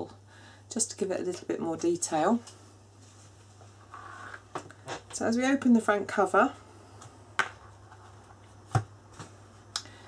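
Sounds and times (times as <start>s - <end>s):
low electrical hum: 0.0s - 10.0s
soft rustle: 2.4s - 4.4s.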